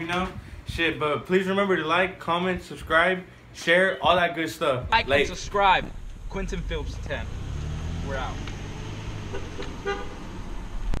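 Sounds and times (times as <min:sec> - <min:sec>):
wind and road noise rumble: 0:04.8 - 0:11.0
car horn toot: 0:09.2 - 0:10.2.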